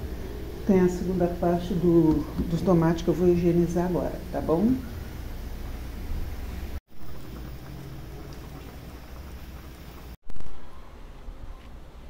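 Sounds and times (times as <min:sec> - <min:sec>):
water running: 0:00.0 - 0:10.2.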